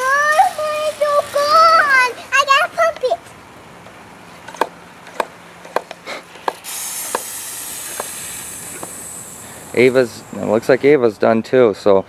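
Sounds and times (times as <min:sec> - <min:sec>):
girl singing: 0:00.0 - 0:03.2.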